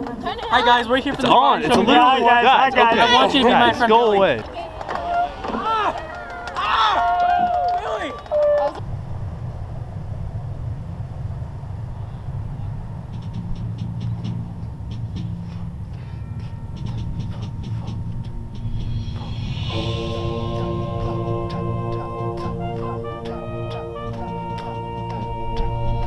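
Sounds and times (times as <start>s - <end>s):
voices: 0.0s - 8.8s
steady low rumble: 8.8s - 26.0s
brass playing a held chord: 19.0s - 26.0s.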